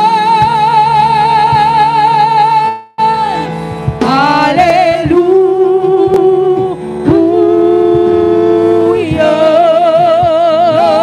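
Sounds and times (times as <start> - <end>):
choir singing gospel: 4.0 - 11.0.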